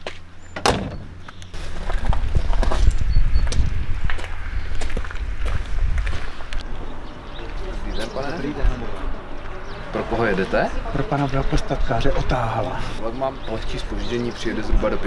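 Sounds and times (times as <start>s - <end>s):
car door shutting: 0.5s - 1.4s.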